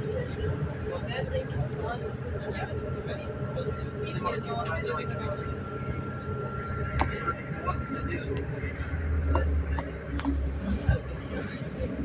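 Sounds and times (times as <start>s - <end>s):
thin steady whine: 0.0s - 12.0s
train carriage rumble: 0.0s - 12.0s.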